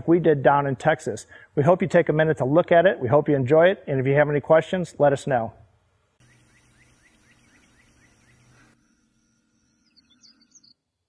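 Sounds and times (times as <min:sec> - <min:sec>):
low steady hum: 0:00.0 - 0:10.6
faint bird chirping: 0:06.2 - 0:10.9.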